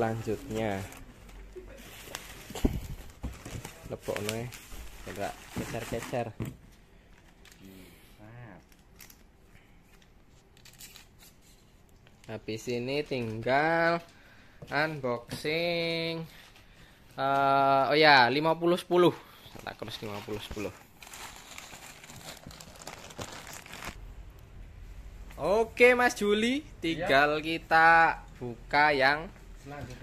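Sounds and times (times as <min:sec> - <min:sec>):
plastic bags and cardboard rustling: 0:00.0 - 0:07.6, 0:19.4 - 0:24.0.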